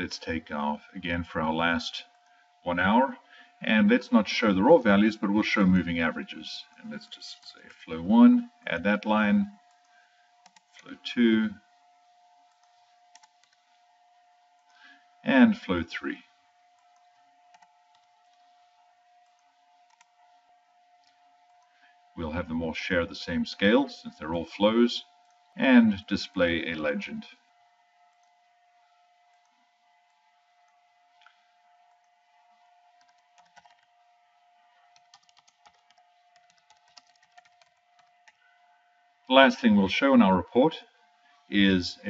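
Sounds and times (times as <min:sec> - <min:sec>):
faint steady hum: 0:00.0 - 0:42.0
computer mouse clicks: 0:09.7 - 0:10.8, 0:12.5 - 0:13.6, 0:16.7 - 0:18.5, 0:19.2 - 0:20.1, 0:33.0 - 0:33.9, 0:34.9 - 0:38.4
keyboard keystrokes: 0:33.0 - 0:33.9, 0:34.9 - 0:38.4.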